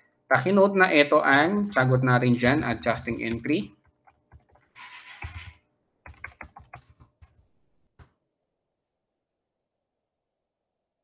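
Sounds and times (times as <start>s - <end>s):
computer keyboard typing: 1.3s - 7.4s.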